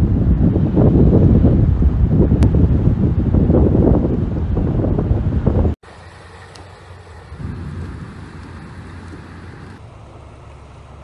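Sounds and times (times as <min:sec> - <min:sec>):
wind rumbling on microphone: 0:00.0 - 0:10.2.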